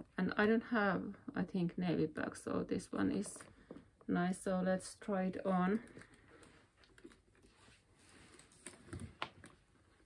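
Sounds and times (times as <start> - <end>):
soft handling rustle: 5.3 - 10.0.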